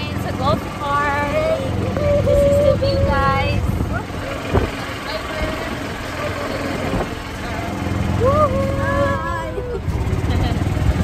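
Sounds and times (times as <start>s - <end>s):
woman speaking: 0.0s - 3.7s
golf cart motor and tyres rumbling: 0.0s - 11.0s
wind across microphone: 1.7s - 7.3s.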